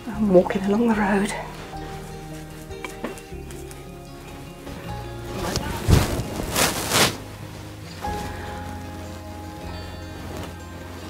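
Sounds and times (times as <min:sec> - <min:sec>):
fur coat swishing: 0:01.0 - 0:11.0.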